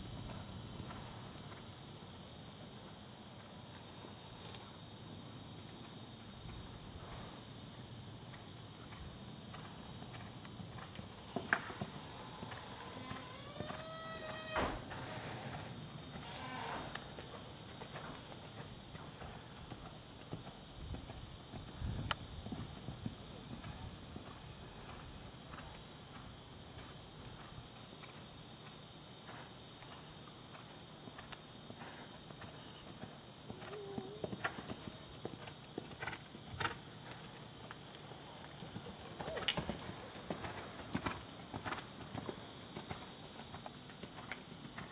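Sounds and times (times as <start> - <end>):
horse hoofbeats on sand: 17.0 - 44.9.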